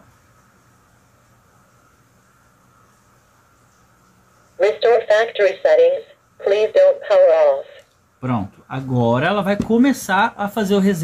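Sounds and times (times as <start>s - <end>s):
recorded voice prompt from speaker: 4.6s - 7.8s.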